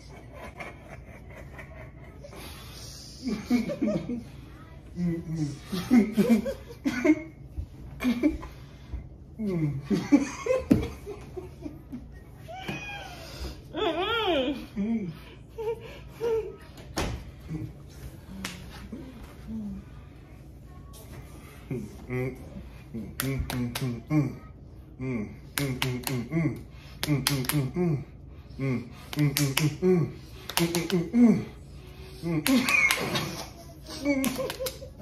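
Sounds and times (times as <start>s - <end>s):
muffled humming: 0.0s - 35.0s
fists smacking open palms: 26.9s - 27.7s, 29.0s - 29.8s, 30.4s - 31.1s.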